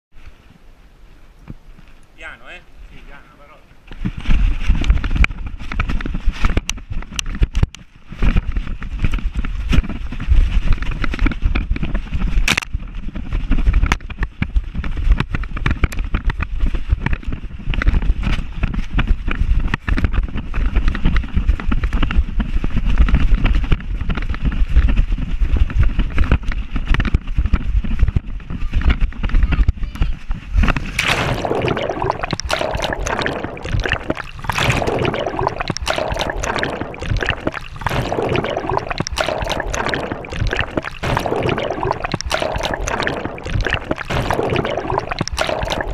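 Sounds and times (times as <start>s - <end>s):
wind rumble on microphone: 3.8s - 32.4s
water splashing and gurgling: 30.8s - 45.9s.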